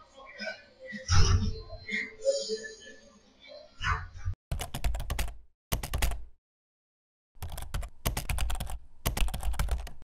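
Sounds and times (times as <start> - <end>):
keyboard typing clicks: 4.5 - 6.3, 7.4 - 10.0.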